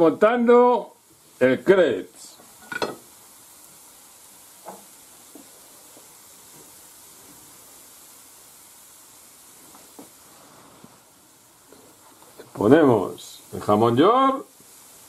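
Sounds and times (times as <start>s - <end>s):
crepe sizzling in frying pan: 0.0s - 15.0s.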